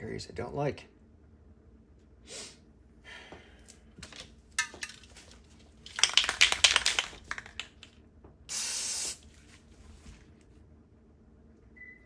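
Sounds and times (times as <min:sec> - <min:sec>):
spray bottle spritzing: 0:08.5 - 0:09.2
spray hissing: 0:08.5 - 0:09.2.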